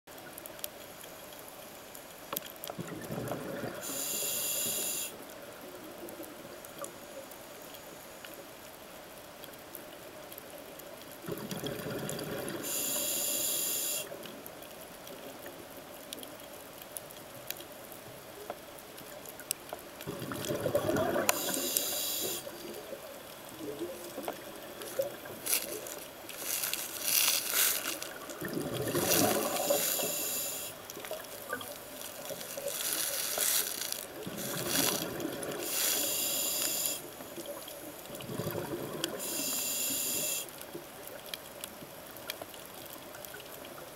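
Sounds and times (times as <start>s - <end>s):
regulator hissing inhalations: 3.8s - 5.2s, 12.6s - 14.2s, 21.2s - 22.6s, 29.1s - 30.8s, 35.6s - 37.1s, 39.2s - 40.5s
bubbling exhalations: 20.0s - 22.4s, 23.8s - 30.7s, 31.5s - 36.8s, 38.2s - 39.3s.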